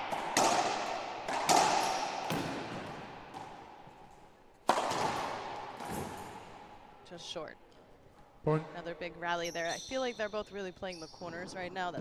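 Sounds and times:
racquetball cracking off walls: 0:00.0 - 0:06.7.

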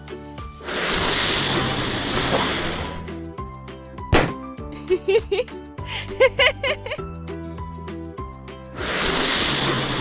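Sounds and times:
air hissing into a balloon: 0:00.6 - 0:03.2, 0:08.8 - 0:10.0.

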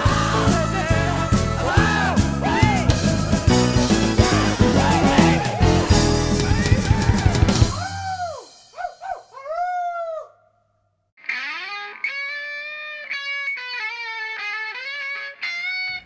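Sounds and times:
drums: 0:00.0 - 0:09.3
electric guitar melody: 0:11.2 - 0:16.0
swooping bending guitar notes: 0:11.2 - 0:16.0.

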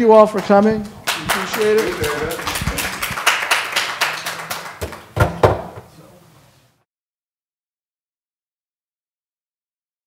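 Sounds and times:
audience applause: 0:01.0 - 0:05.5
loud thumps: 0:04.8 - 0:05.9.

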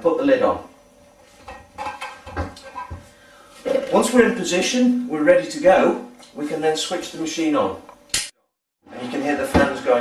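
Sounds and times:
man speaking: 0:03.7 - 0:07.8, 0:08.9 - 0:10.0.

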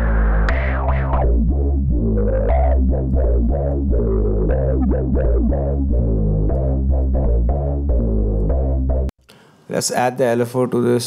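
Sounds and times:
synth bass line: 0:00.0 - 0:09.1.

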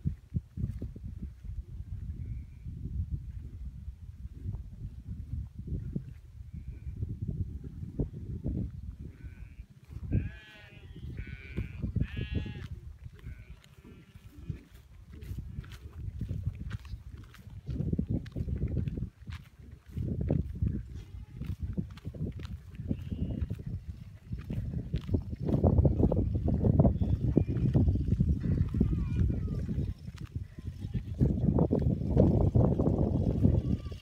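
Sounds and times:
low wind rumble on microphone: 0:00.0 - 0:34.0
distant goats and sheep bleating: 0:09.0 - 0:16.0, 0:19.8 - 0:31.6, 0:32.8 - 0:34.0.

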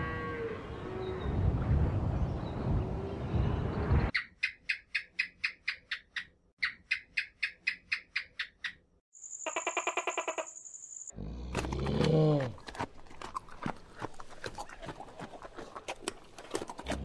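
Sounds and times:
high chirping call: 0:04.1 - 0:11.1.

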